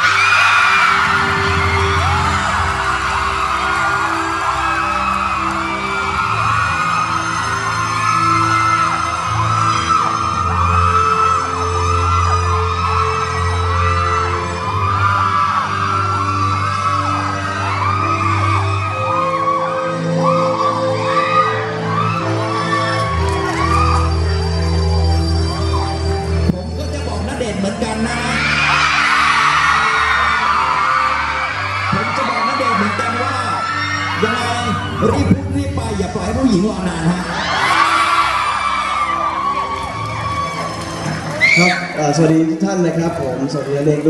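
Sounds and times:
crowd cheering and screaming: 0.0 - 44.0
music with long held notes: 0.0 - 44.0.

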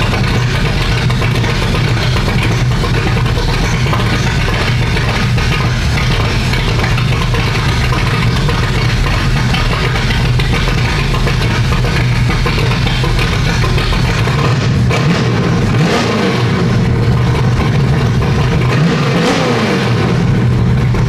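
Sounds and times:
car engine idling and revving: 0.0 - 21.0.

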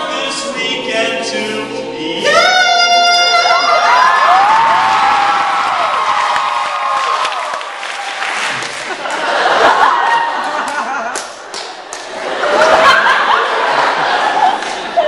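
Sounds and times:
a cappella group singing: 0.0 - 4.2
audience cheering and applauding: 3.3 - 14.8.

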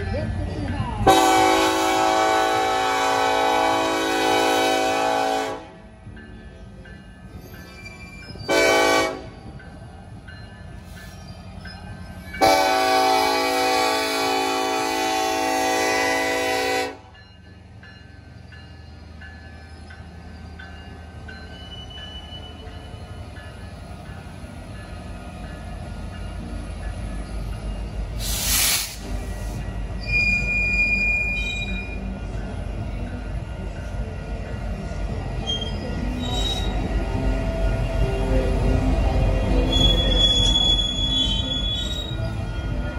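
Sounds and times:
locomotive engines and wheels rumbling: 0.0 - 42.9
locomotive horn blasts: 1.1 - 5.8, 8.5 - 9.3, 12.4 - 17.1.

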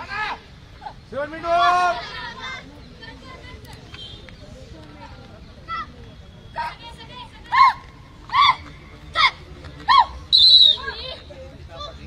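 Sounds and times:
players shouting calls: 0.0 - 4.5, 5.5 - 12.0
shrill referee whistle: 10.3 - 11.0.

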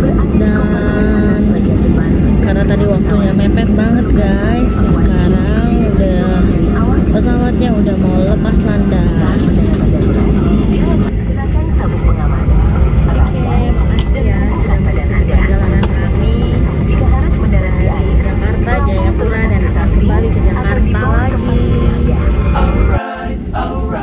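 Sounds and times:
jet engines rumbling: 0.0 - 24.0
people talking: 0.0 - 24.0.

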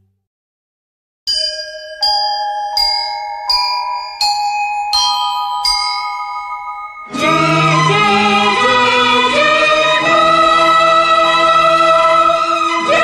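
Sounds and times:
bell-like struck notes: 1.3 - 8.3.

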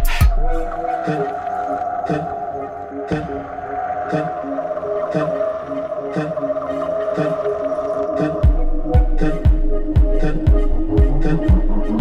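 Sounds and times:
heavy electronic beat: 0.0 - 1.3, 8.4 - 12.0.

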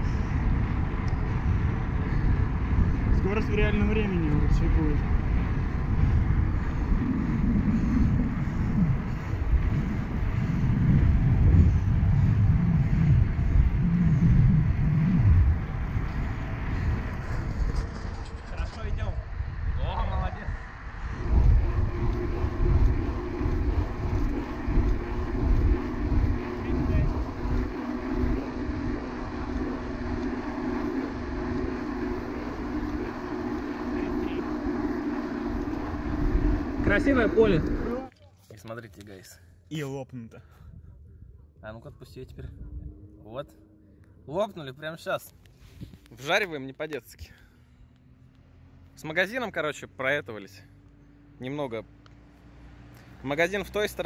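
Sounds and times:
bike tyre rumble on asphalt: 0.0 - 19.8, 20.4 - 38.1
wind buffeting microphone: 0.0 - 38.1, 40.5 - 43.8.

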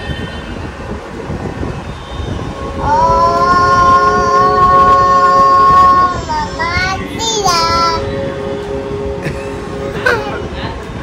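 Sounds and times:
steady low tone: 1.8 - 11.0
child singing a held note: 2.8 - 8.5.

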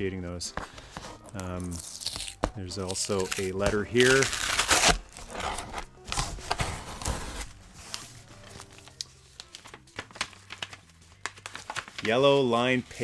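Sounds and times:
paper rustling and crinkling: 0.5 - 13.0
paper envelope tearing: 0.8 - 12.3.

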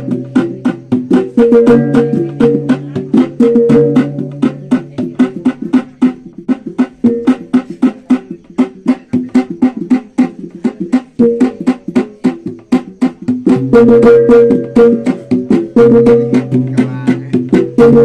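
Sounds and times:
sharp drum strikes: 0.0 - 18.0.

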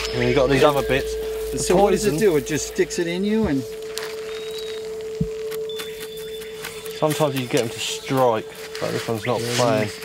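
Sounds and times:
held music drone tone: 0.0 - 10.0.

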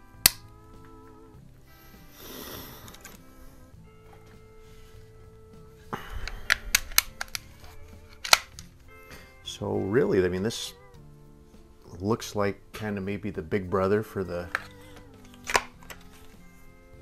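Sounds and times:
background music: 0.0 - 17.0
air rifle clicks and clacks: 6.2 - 8.7.

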